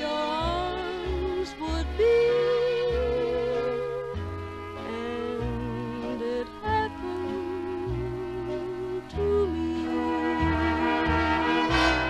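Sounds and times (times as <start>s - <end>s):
dance orchestra playing slow ballad: 0.0s - 12.0s.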